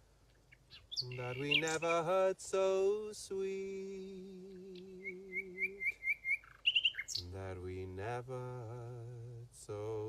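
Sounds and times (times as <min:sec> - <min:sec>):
nightingale singing: 0:00.3 - 0:10.0.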